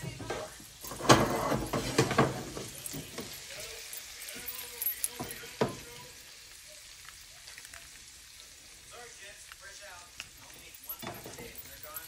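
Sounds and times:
shrimp sizzling in a frying pan: 0:00.0 - 0:12.0.

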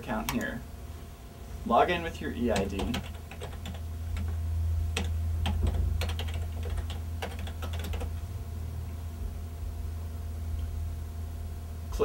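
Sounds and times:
steady low hum: 0:00.0 - 0:12.0
typing on computer keyboard: 0:02.5 - 0:04.3, 0:05.0 - 0:08.2.

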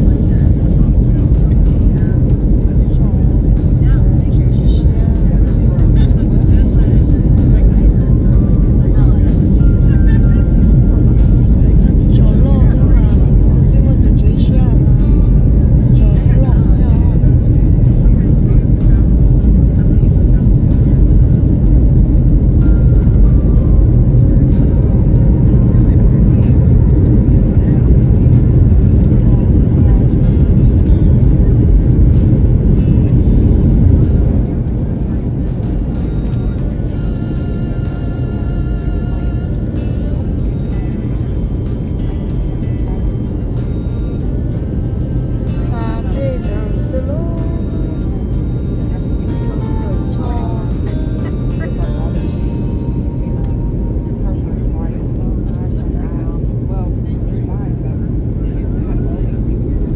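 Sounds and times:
jet engine cabin rumble: 0:00.0 - 0:59.9.

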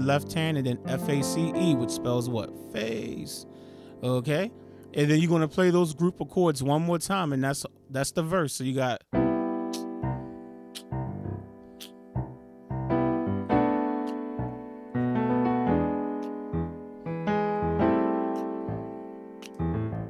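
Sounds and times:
piano chords ringing: 0:00.0 - 0:08.5, 0:09.1 - 0:20.0.

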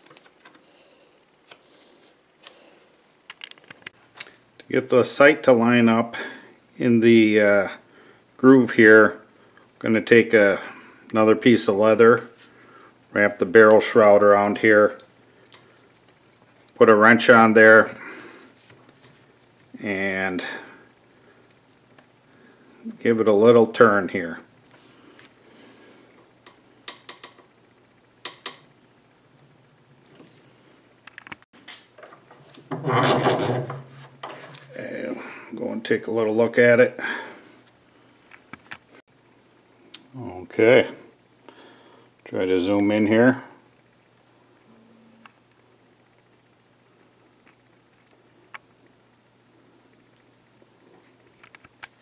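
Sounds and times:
faint steady hum: 0:00.0 - 0:52.0.

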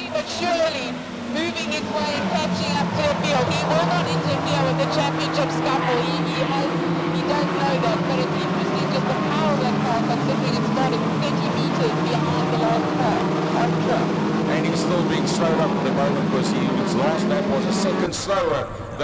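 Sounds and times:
race car engines: 0:00.0 - 0:19.0
voices talking: 0:00.0 - 0:19.0.

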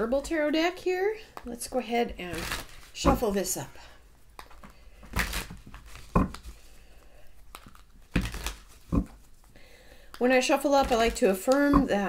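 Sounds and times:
cards shuffled by hand: 0:04.3 - 0:06.7, 0:07.4 - 0:09.5, 0:10.4 - 0:11.8.

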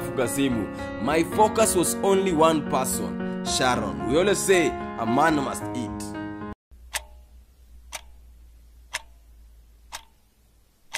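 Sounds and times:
background music: 0:00.0 - 0:06.6
clock ticking: 0:06.7 - 0:10.9.

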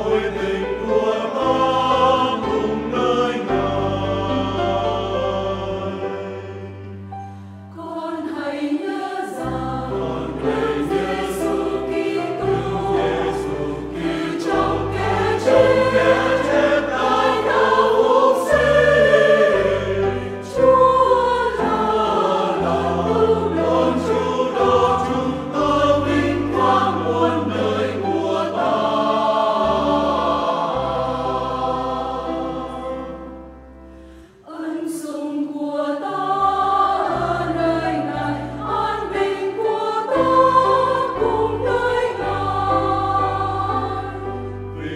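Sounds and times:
church choir singing a hymn: 0:00.0 - 0:44.9
piano: 0:00.0 - 0:44.9.

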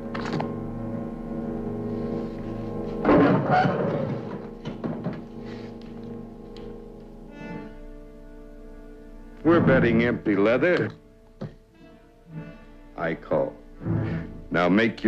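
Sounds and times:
orchestral string chord: 0:05.2 - 0:15.0.

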